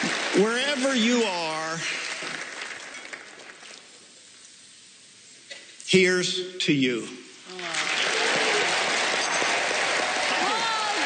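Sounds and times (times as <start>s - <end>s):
audience applause: 0.0s - 3.7s, 7.6s - 11.0s.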